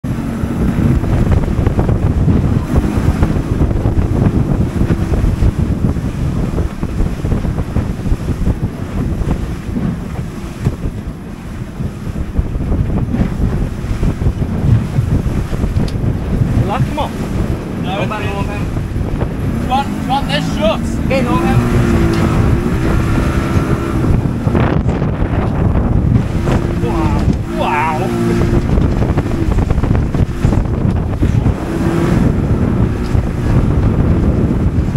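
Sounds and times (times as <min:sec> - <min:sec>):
boat engine running: 0:00.0 - 0:34.9
water rushing against hull: 0:00.0 - 0:34.9
wind buffeting microphone: 0:00.0 - 0:34.9.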